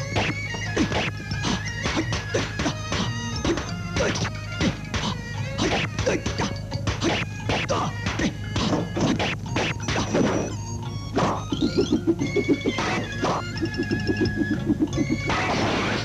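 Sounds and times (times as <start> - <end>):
film score music: 0.0 - 16.0
kung fu hit whacks and swishes: 0.2 - 10.5.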